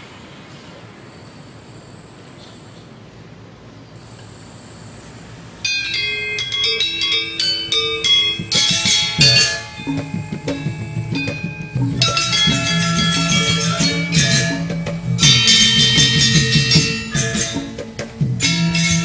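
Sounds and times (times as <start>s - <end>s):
gamelan ensemble playing: 5.6s - 19.0s
metallophones ringing notes: 5.6s - 19.0s.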